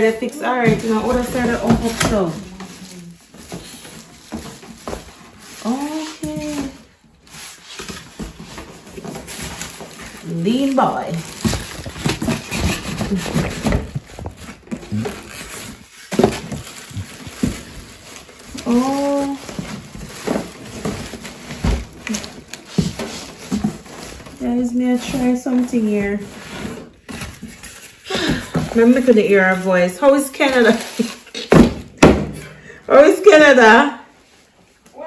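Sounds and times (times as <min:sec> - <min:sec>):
plastic wrap and paper crinkling: 0:00.0 - 0:31.9, 0:32.9 - 0:35.0
foam and cardboard handling: 0:00.0 - 0:35.0.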